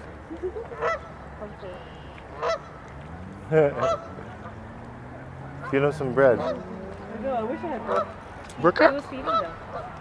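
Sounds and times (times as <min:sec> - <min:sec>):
geese honking: 0:00.6 - 0:10.0.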